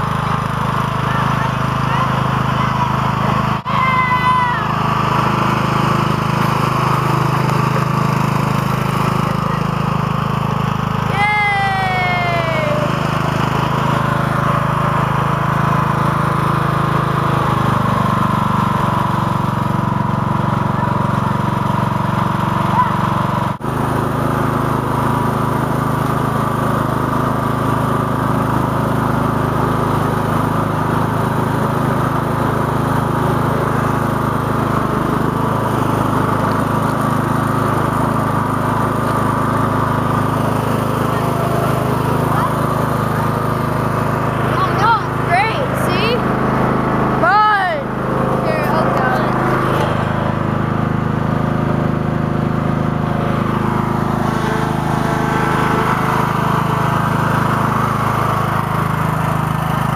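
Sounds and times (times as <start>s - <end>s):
lawn tractor engine running: 0.0s - 59.9s.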